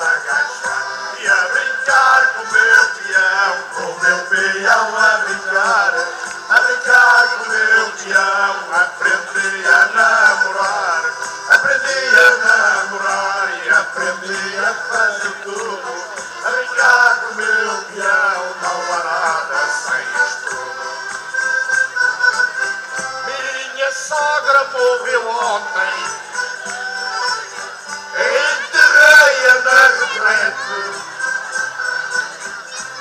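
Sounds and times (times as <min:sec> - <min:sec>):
instrumental accompaniment: 0:00.0 - 0:33.0
men singing folk song: 0:00.0 - 0:33.0.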